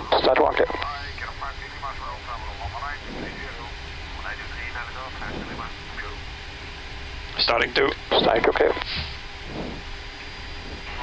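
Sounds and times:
aircraft flight deck hum: 0:00.0 - 0:11.0
faint voice speaking: 0:00.1 - 0:06.2.

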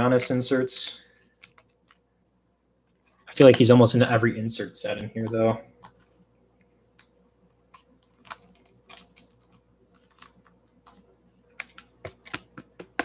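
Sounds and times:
trading cards clicking: 0:07.7 - 0:13.0
foil wrapper crinkling: 0:08.0 - 0:10.7.

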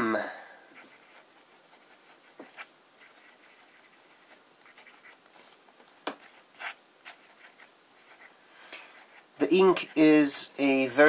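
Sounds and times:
pen scratching on paper: 0:00.7 - 0:05.4, 0:06.1 - 0:08.3, 0:08.9 - 0:10.1.

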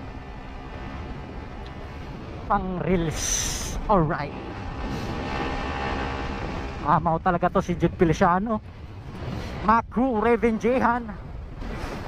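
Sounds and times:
motorcycle engine hum: 0:00.0 - 0:12.0
wind and road noise: 0:00.0 - 0:12.0.

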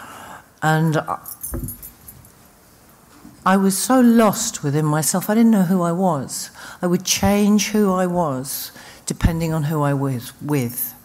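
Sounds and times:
woman speaking: 0:03.5 - 0:11.0.

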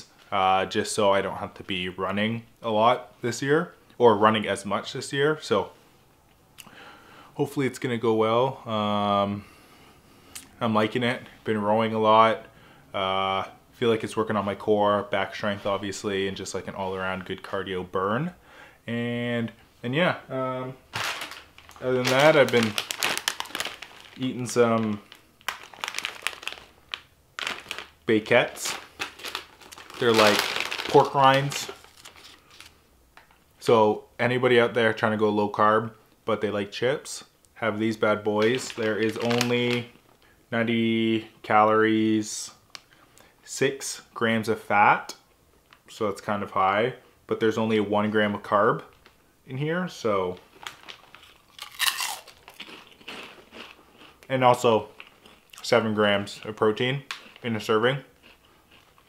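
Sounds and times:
plastic bag crinkling: 0:20.9 - 0:33.3, 0:37.9 - 0:40.4, 0:50.3 - 0:54.3
crunchy chewing: 0:50.7 - 0:54.3, 0:58.1 - 0:59.0.

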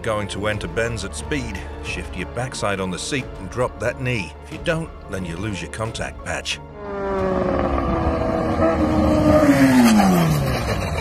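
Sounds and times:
motorcycle passing by: 0:06.8 - 0:11.0.

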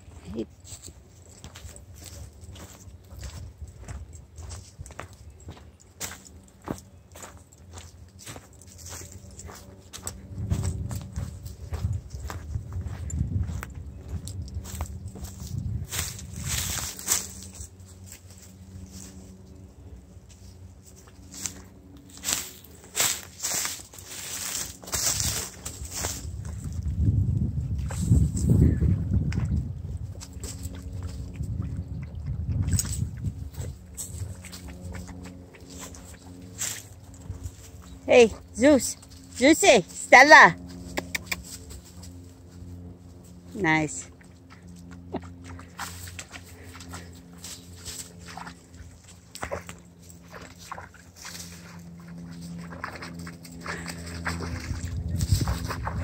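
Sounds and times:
footsteps crunching through dry leaves: 0:00.0 - 0:31.4, 0:32.9 - 0:56.0
low rumble: 0:40.6 - 0:56.0.

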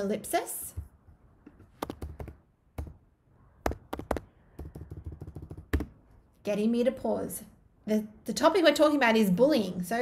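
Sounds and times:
typing on computer keyboard: 0:01.8 - 0:02.9, 0:03.7 - 0:05.9.

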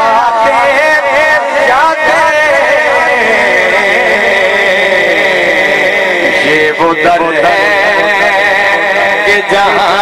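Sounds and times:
man singing a long held note: 0:00.0 - 0:10.0.

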